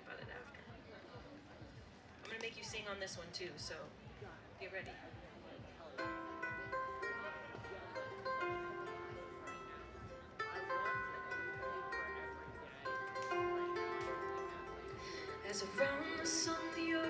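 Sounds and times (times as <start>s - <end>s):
charango plucked notes and chords: 6.0s - 17.0s.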